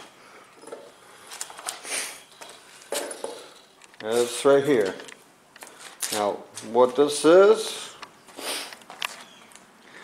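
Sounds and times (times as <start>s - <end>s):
shuffling and handling noises: 0.0s - 9.7s
short breathy hiss: 8.4s - 8.8s.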